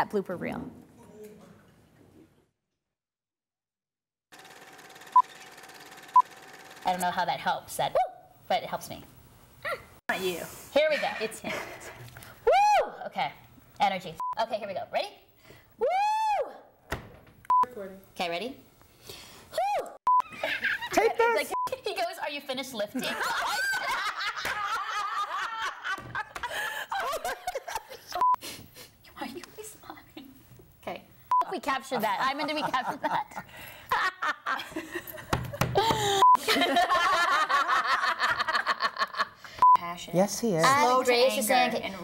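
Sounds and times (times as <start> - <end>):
faint constant hum: 6.9 - 42.0
women laughing: 20.2 - 21.4, 22.9 - 28.2, 31.6 - 39.5.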